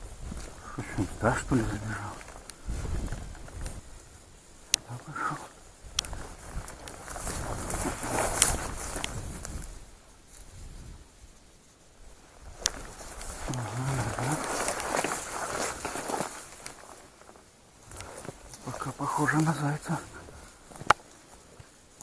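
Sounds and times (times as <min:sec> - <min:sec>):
rustling through dry grass: 0:00.0 - 0:22.0
twigs snapping: 0:01.5 - 0:03.8, 0:04.7 - 0:05.2, 0:05.8 - 0:10.5, 0:12.5 - 0:21.7.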